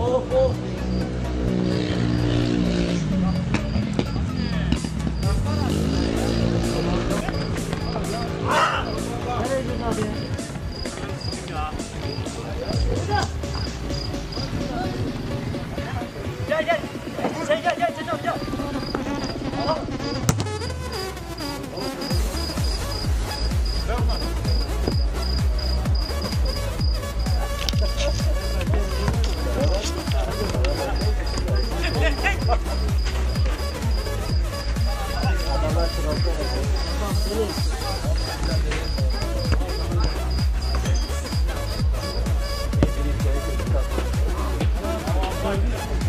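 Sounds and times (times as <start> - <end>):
music: 0.0 - 46.0
voices: 0.0 - 46.0
cricket chirping: 0.3 - 44.6
steady engine drone: 0.5 - 9.9
low beat: 0.6 - 17.4, 18.1 - 46.0.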